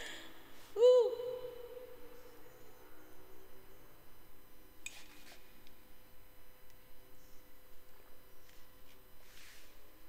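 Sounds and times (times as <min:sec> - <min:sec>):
woman hooting: 0:00.8 - 0:02.0.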